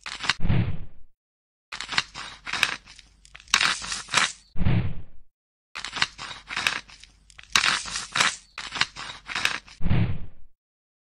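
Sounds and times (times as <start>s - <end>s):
knife scraping crunchy growth: 1.7s - 4.5s, 5.8s - 9.8s.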